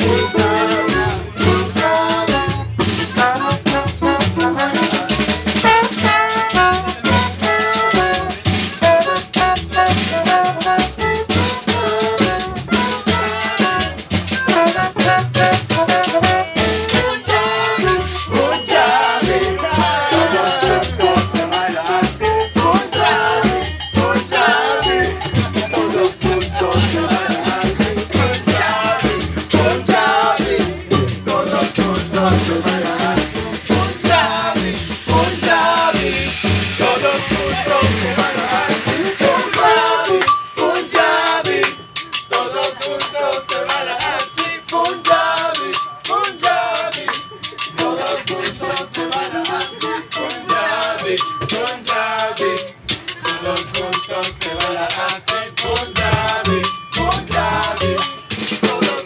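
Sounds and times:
upright bass: 0.0 - 42.3, 52.5 - 59.0
drums and hand percussion: 0.0 - 59.0
wavering melody line: 0.0 - 59.0.

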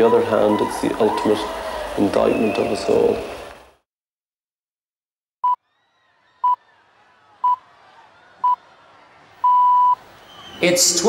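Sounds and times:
time signal pips: 9.4 - 10.0.

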